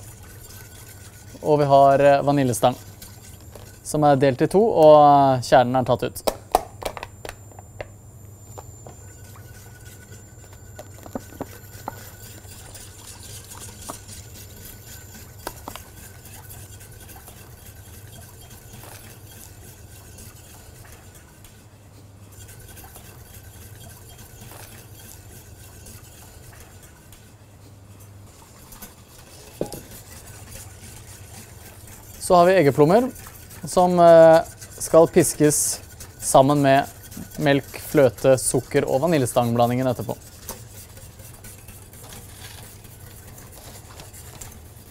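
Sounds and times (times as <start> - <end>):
whisk ticking against a metal pan: 29.6 - 44.6.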